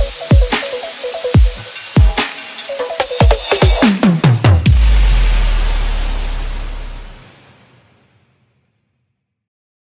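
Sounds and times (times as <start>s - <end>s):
white-noise hiss: 0.0s - 8.6s
long held sub-bass note: 4.6s - 7.4s.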